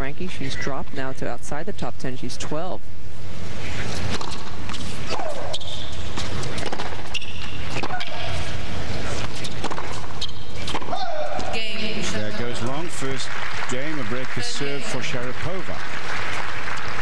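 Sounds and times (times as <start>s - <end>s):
racket striking tennis ball: 4.0s - 11.6s.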